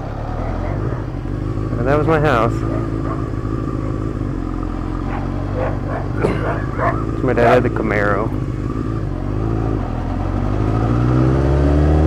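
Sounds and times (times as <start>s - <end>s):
motorcycle engine running at low revs: 0.0s - 12.0s
dog barking: 0.4s - 1.1s, 2.6s - 4.0s, 5.0s - 7.6s.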